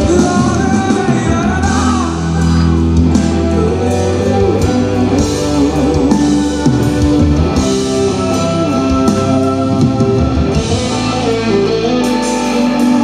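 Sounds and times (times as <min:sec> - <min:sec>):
live band playing: 0:00.0 - 0:13.0.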